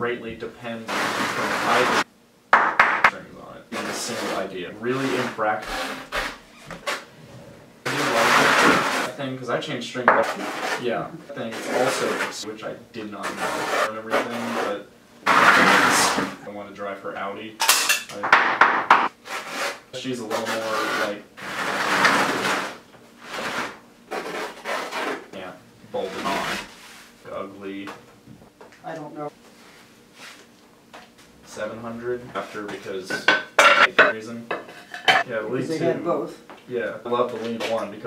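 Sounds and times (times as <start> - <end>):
frame scraping across floor: 3.8 - 9.1
wooden frame scraping on concrete: 7.9 - 9.1.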